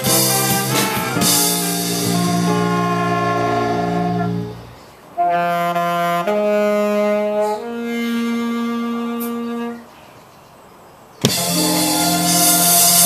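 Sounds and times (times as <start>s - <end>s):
saxophone long notes: 0.0s - 9.9s, 11.3s - 13.0s.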